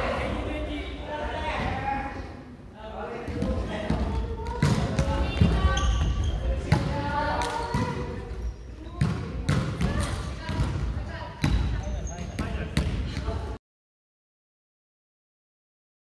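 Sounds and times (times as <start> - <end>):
voices in hall: 0.0 - 13.6
shoes squeaking: 5.2 - 6.7, 11.4 - 12.6.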